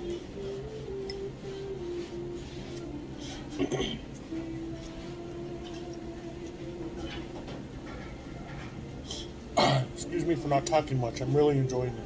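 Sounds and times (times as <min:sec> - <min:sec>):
quiet background hum: 0:00.0 - 0:12.0
man clearing his throat: 0:03.6 - 0:04.1, 0:09.6 - 0:10.0.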